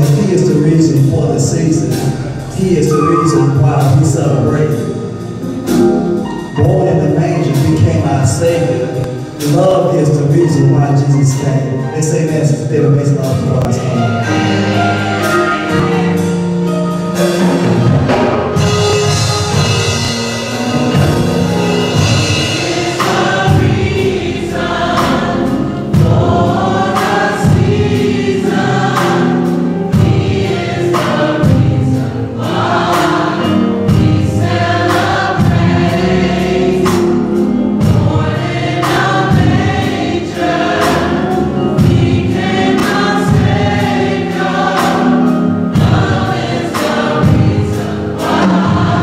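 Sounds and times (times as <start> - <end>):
gospel choir singing: 0.0 - 49.0
music with steady beat: 13.4 - 49.0.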